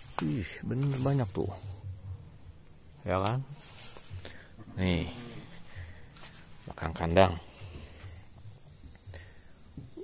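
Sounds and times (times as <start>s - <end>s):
faint low rumble: 0.0s - 10.0s
high-pitched insect call: 3.6s - 10.0s.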